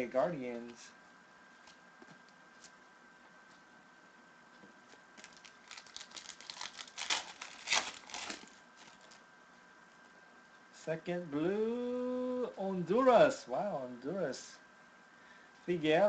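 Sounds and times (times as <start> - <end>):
card pack wrapper tearing and crinkling: 5.2 - 9.2.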